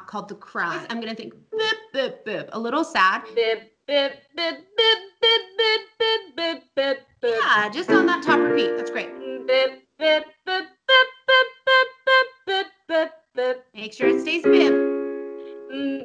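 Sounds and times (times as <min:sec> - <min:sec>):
woman singing staccato syllables: 0:00.7 - 0:14.8, 0:15.6 - 0:16.0
held piano chord: 0:07.8 - 0:09.4, 0:14.1 - 0:15.7.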